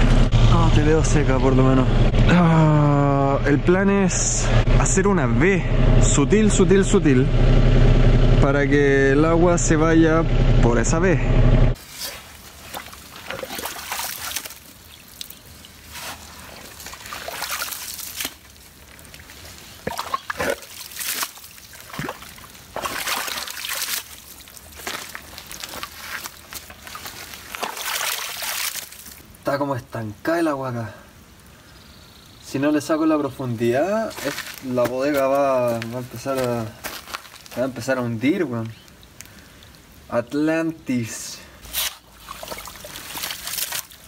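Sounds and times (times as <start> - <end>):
muddy water trickling and sloshing: 11.8 - 29.6, 33.4 - 40.4, 41.4 - 44.0.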